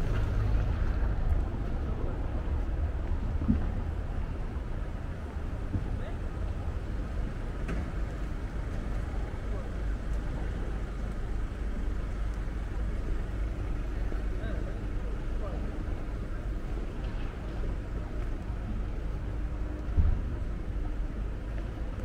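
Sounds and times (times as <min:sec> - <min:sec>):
indistinct voices of passers-by: 0:00.0 - 0:22.0
low rumble of traffic: 0:00.0 - 0:22.0.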